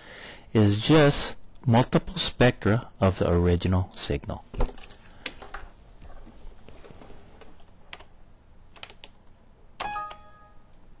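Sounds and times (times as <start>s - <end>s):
computer alert chime: 9.8s - 10.7s.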